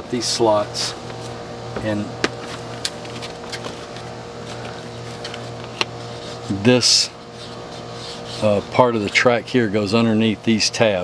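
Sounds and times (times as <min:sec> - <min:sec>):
mechanical hum: 0:00.0 - 0:11.0.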